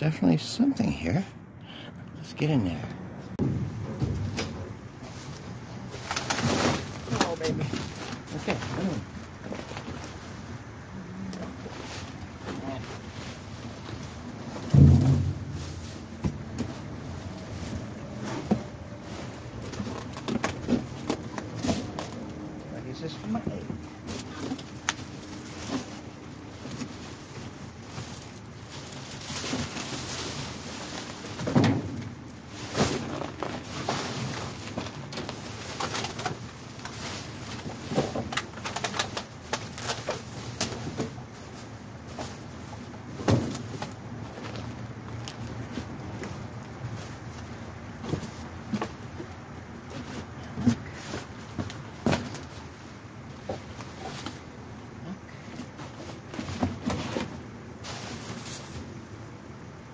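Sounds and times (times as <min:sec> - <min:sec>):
items knocking in metal dumpster: 0:03.4 - 0:04.8, 0:14.5 - 0:16.9, 0:31.4 - 0:33.6
plastic bags rustling: 0:03.7 - 0:54.5
loud short low thud: 0:14.7 - 0:15.8
plastic bags crinkling: 0:24.2 - 0:31.4.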